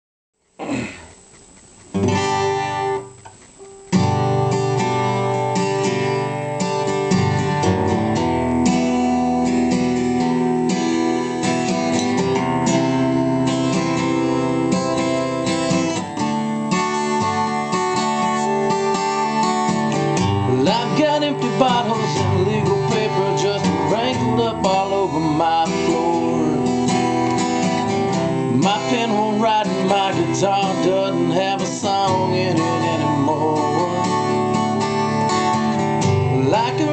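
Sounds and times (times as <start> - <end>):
acoustic guitar strummed: 0.5 - 36.9.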